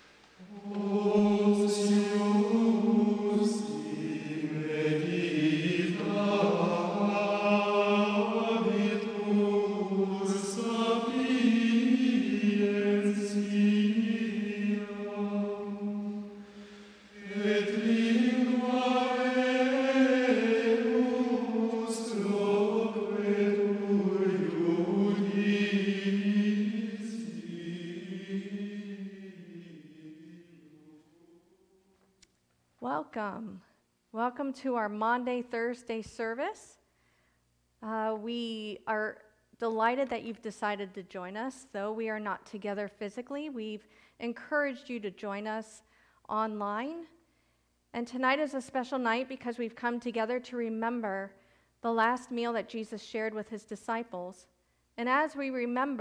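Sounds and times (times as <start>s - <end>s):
person singing chant-like melody: 0.4s - 31.9s.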